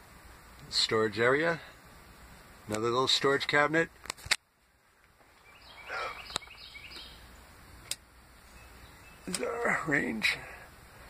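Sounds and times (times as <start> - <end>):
bird chirping: 5.3 - 7.6, 8.2 - 10.0
sharp clicks: 7.8 - 8.1.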